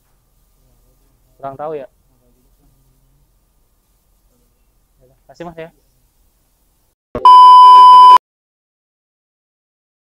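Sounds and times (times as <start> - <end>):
high-pitched test tone beep: 7.2 - 8.2.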